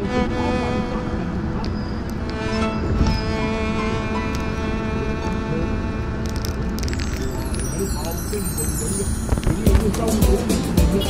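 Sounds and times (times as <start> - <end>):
music: 2.3 - 5.5, 6.8 - 11.0.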